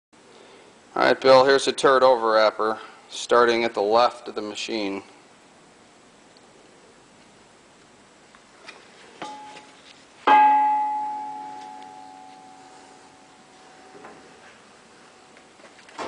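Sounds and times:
metal strike ringing bell-like: 0:09.2 - 0:09.7, 0:10.3 - 0:14.0.

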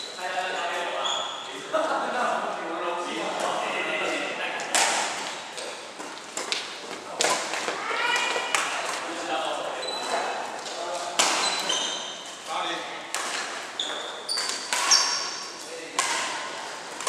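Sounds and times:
racket hitting shuttlecock: 0:04.7 - 0:09.0, 0:13.1 - 0:17.0.

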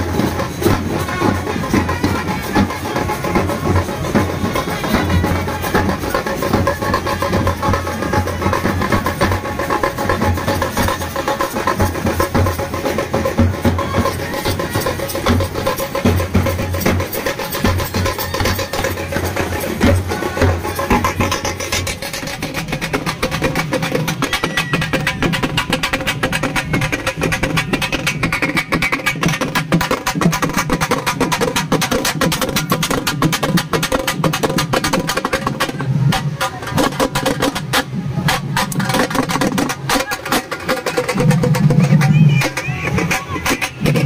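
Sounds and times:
fast drumming on bass and snare: 0:00.0 - 0:44.0.

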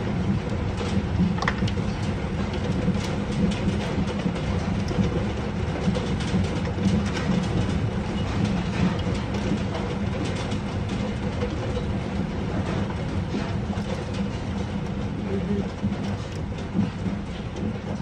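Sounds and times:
hail clattering on paving: 0:00.3 - 0:18.0.

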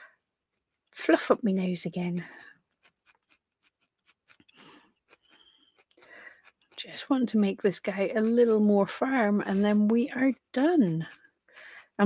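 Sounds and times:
felting needle stabbing wool: 0:00.5 - 0:12.0.

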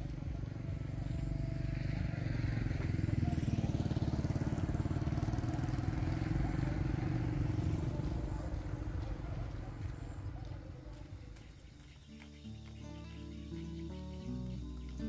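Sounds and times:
small motorcycle engine running: 0:00.0 - 0:11.6.

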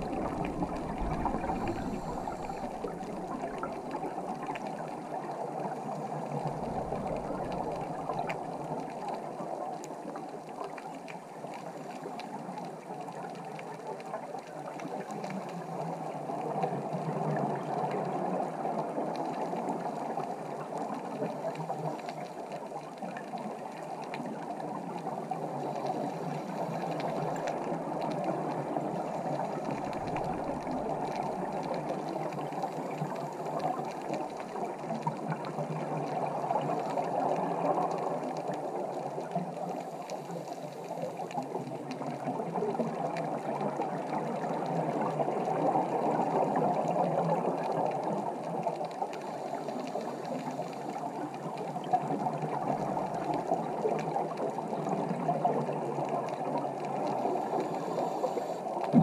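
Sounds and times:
underwater rush of water and bubbles: 0:00.0 - 0:59.0.

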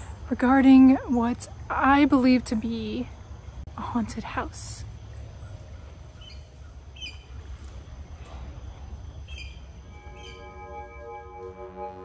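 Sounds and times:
birds chirping: 0:00.0 - 0:11.0
low outdoor background noise: 0:00.0 - 0:12.0
ambient synth pad: 0:08.3 - 0:12.0.

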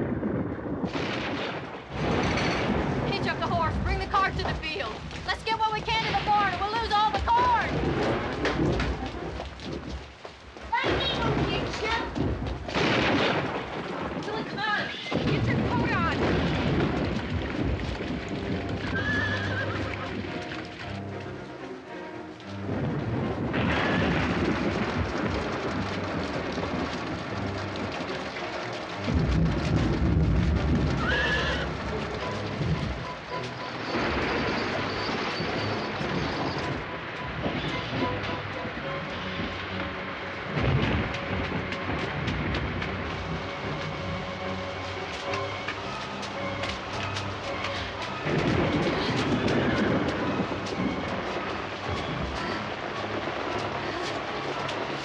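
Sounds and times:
steady rain: 0:00.0 - 0:55.0
thunder rumbling: 0:00.0 - 0:55.0
horse whinnying: 0:18.8 - 0:20.2, 0:23.7 - 0:24.2, 0:30.9 - 0:31.8, 0:48.8 - 0:50.3.

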